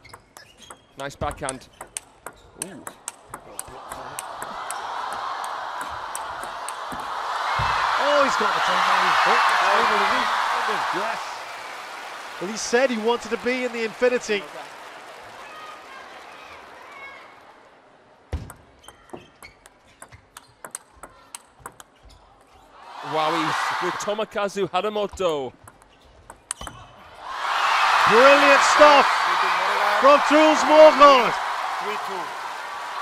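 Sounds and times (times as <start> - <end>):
table tennis ball clicking: 1.4 - 4.8, 18.5 - 21.9
arena crowd noise: 2.7 - 18.4, 22.7 - 24.9, 26.7 - 33.0.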